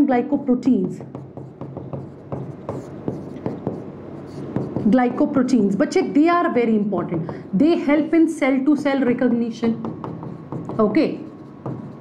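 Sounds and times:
chalk tapping and scratching on blackboard: 0.8s - 5.2s, 9.8s - 12.0s.

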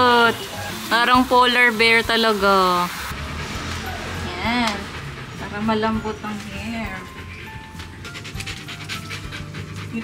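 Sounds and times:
dog panting: 4.4s - 10.0s.

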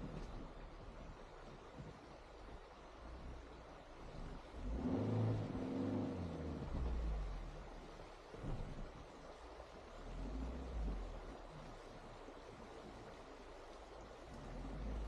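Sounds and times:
car engine revving: 4.1s - 7.8s.

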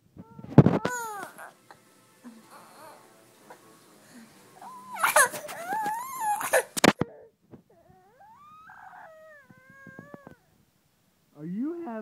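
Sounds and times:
baby crying: 0.2s - 10.5s.

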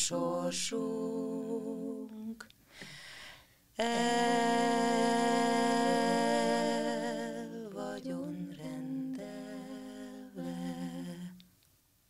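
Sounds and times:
women singing a cappella: 0.0s - 2.5s, 3.8s - 11.5s.

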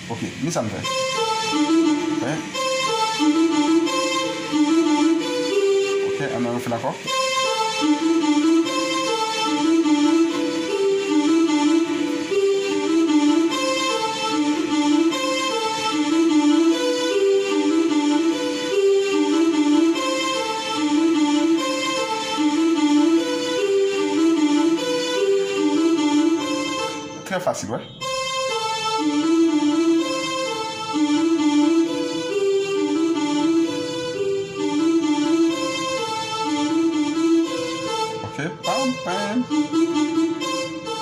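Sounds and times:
electronic keyboard fast solo: 0.0s - 41.0s.

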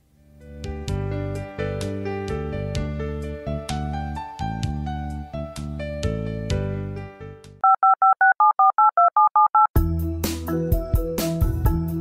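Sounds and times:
music: 0.0s - 7.6s, 9.8s - 12.0s
telephone keypad beeps: 7.6s - 9.7s
music with a beat: 9.8s - 12.0s.

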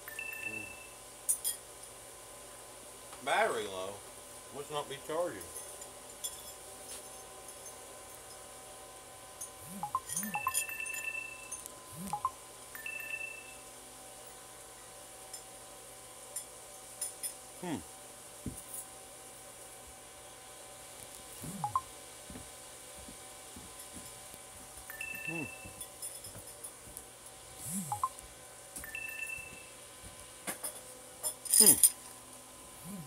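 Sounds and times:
low steady hum: 8.9s - 33.0s
electronic beeps: 9.7s - 13.5s, 21.5s - 21.8s, 24.9s - 25.7s, 27.7s - 28.2s
low vocal sounds: 17.6s - 17.9s, 21.4s - 21.8s, 27.6s - 28.0s, 32.8s - 33.0s.

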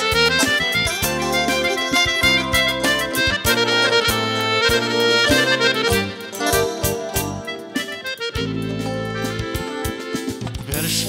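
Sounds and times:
accordion dance music: 0.0s - 11.0s
drums: 0.0s - 11.0s.

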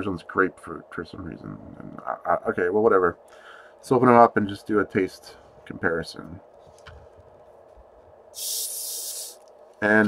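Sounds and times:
carbonated gas hissing from bottle: 8.4s - 9.4s.

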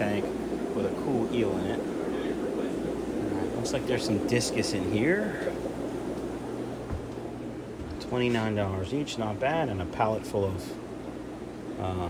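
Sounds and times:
even hiss: 0.0s - 10.9s
low hum: 0.0s - 12.0s.

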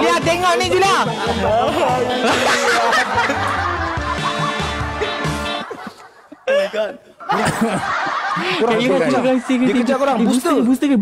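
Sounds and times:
man speaking: 0.0s - 3.1s, 6.5s - 7.2s, 8.4s - 11.0s
men laughing: 0.5s - 10.8s.

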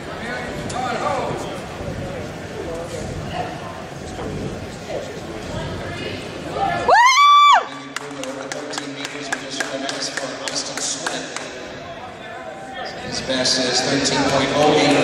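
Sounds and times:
faint crowd murmur: 0.0s - 15.0s.

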